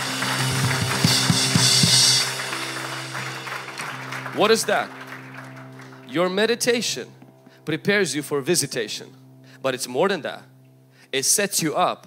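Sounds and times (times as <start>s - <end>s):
drum hits: 0.0s - 2.8s
keyboard chords: 0.0s - 12.0s.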